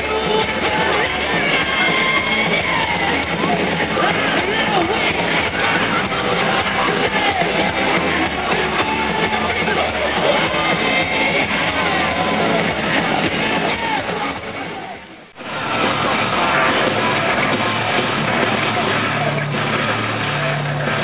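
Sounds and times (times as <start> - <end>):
live rock music with electric guitars: 0.0 - 21.0.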